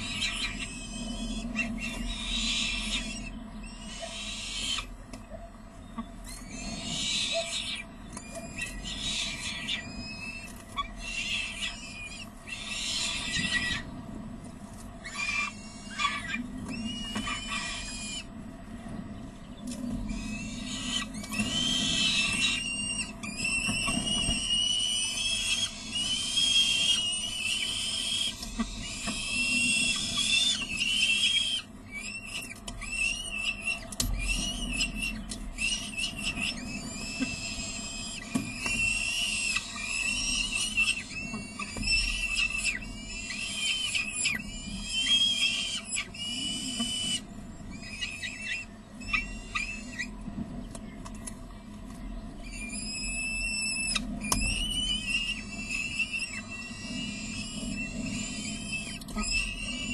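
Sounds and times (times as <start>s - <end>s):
falcon chicks screeching calls: 0.0s - 14.0s, 15.0s - 18.4s, 19.4s - 51.1s, 52.4s - 59.9s.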